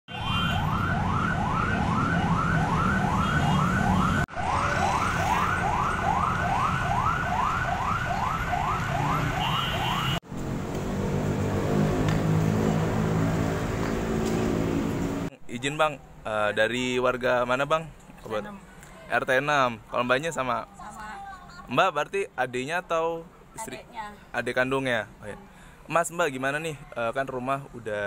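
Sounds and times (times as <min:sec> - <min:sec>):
siren yelping: 0:00.1 - 0:10.2
road traffic rumble: 0:00.1 - 0:28.0.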